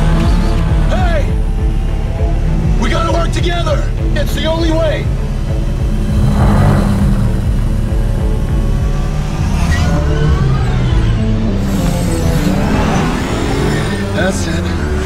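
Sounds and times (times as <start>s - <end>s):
synthetic engine whines: 5.2s - 15.0s
electronic music: 5.6s - 9.8s
rushing pass-by whoosh: 5.9s - 10.2s.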